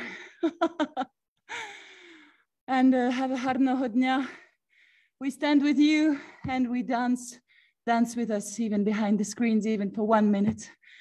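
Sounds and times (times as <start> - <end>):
woman laughing: 0.0 - 1.2.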